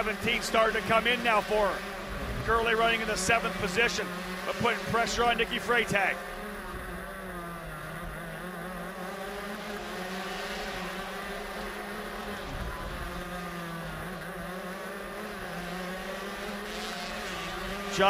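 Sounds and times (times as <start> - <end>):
kart engine buzzing: 0.0 - 18.0.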